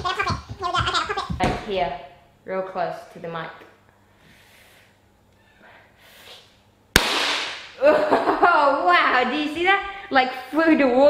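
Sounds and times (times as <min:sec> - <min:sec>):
balloon bursting bang: 0:07.0 - 0:07.7
laughter: 0:07.8 - 0:08.7.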